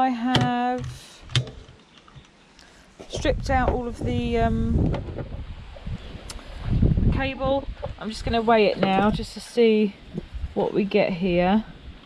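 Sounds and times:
wind buffeting microphone: 3.0s - 12.0s.

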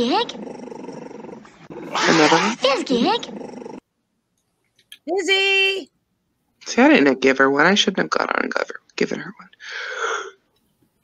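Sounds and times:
dog grumbling: 0.0s - 3.8s.

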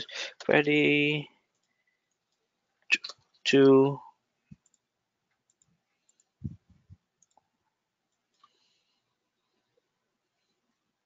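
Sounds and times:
mouse and keyboard clicks: 7.2s - 7.5s.

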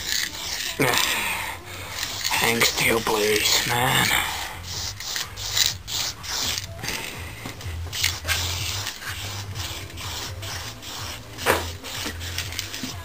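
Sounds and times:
paintbrush scratching on metal: 0.0s - 6.8s, 7.8s - 13.0s.

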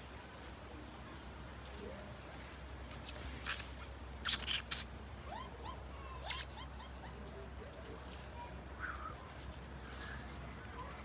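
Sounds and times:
short hissy noises: 2.9s - 5.0s
bush dogs squeaking: 3.0s - 7.6s.

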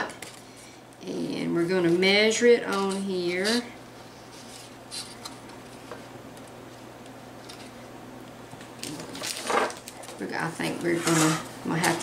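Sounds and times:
cardstock rustling and clatter: 8.8s - 12.0s.

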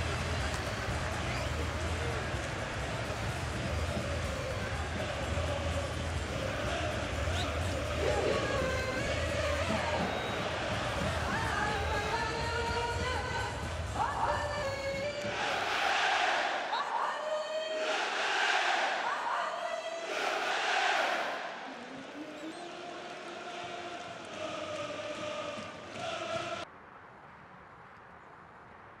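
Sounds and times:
stadium crowd chanting and cheering: 0.0s - 26.7s.

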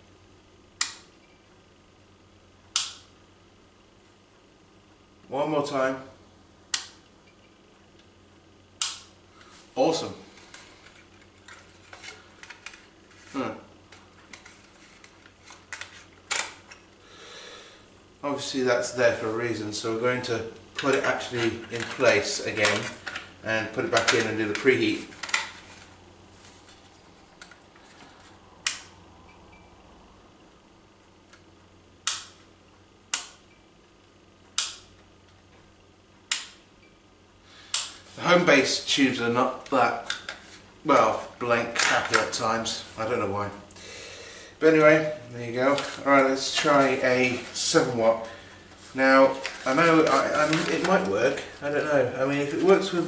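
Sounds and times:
desk lamp switch clicking: 2.7s - 3.1s, 8.8s - 9.1s, 32.0s - 32.4s, 34.5s - 34.9s, 36.3s - 36.6s.

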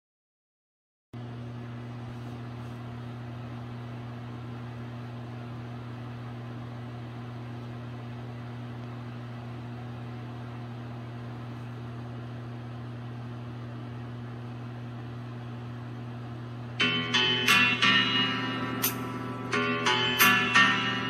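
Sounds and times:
low electrical hum: 1.2s - 21.0s.

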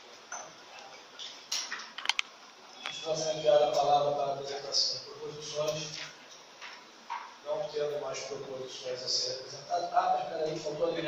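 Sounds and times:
small clicks and taps: 1.2s - 3.0s.

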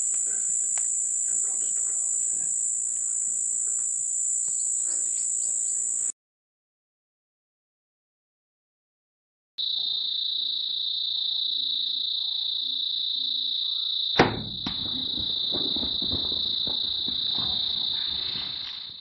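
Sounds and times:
high-pitched insect drone: 0.0s - 6.2s, 9.6s - 19.0s
bow shot snap: 14.2s - 14.8s
hooves running over dry ground: 15.0s - 19.0s.

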